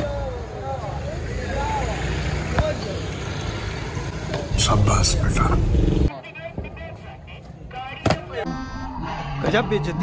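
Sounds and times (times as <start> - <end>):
traffic and scooters rumbling: 0.0 - 9.0.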